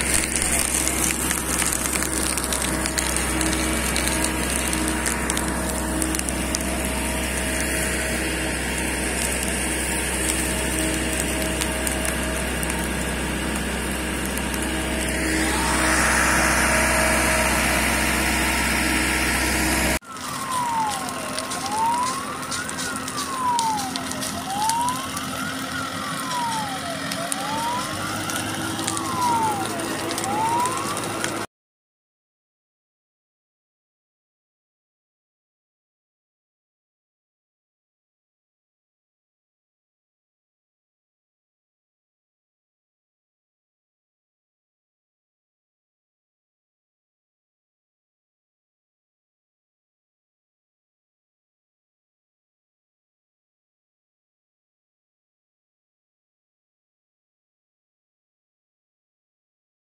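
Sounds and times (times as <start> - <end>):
fire engine siren wailing: 0.0 - 31.5
fire truck engine and pump running: 0.0 - 31.5.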